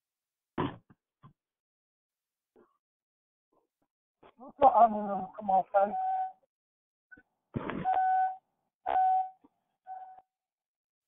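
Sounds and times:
telephone line beeps: 5.9 - 6.4, 7.8 - 10.3.

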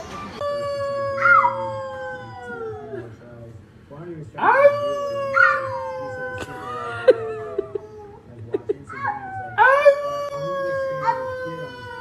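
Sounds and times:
long howls: 0.4 - 3.1, 4.4 - 8.2, 9.1 - 12.0.

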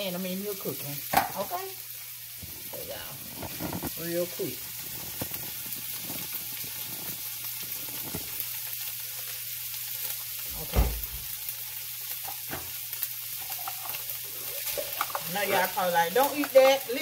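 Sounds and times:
hash sizzling in a skillet: 0.0 - 17.0.

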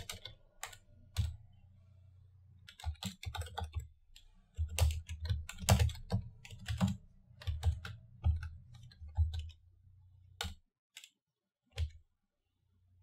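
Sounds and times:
computer keyboard typing: 0.0 - 1.4, 2.6 - 9.7, 10.3 - 12.1.

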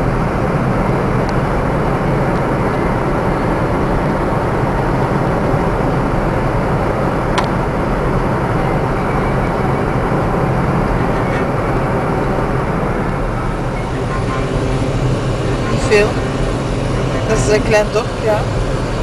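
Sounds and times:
car road and engine noise: 0.0 - 19.0.

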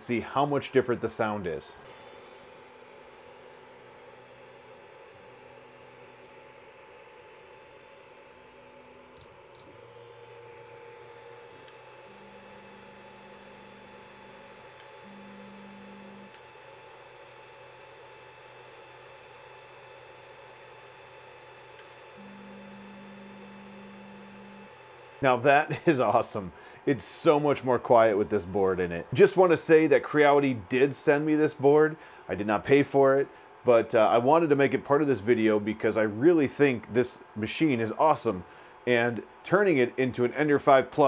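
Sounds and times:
stepper motors humming: 0.0 - 19.2, 20.2 - 41.0
cooling fans whirring: 0.0 - 41.0
small clicks: 9.1 - 9.7, 16.0 - 16.5.

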